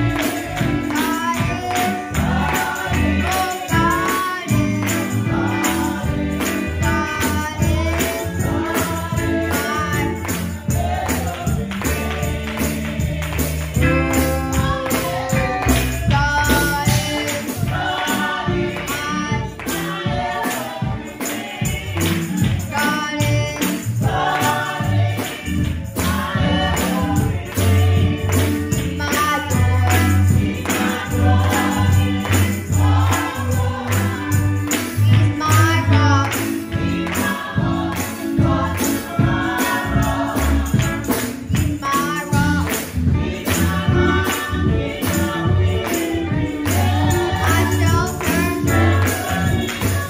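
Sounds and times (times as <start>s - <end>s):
sharp percussive beat: 0.0s - 50.0s.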